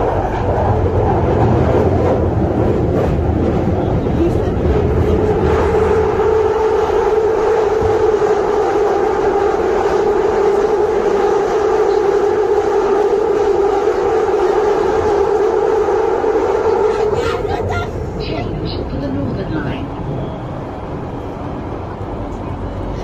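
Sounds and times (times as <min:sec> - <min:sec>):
underground train drone: 0:00.0 - 0:23.0.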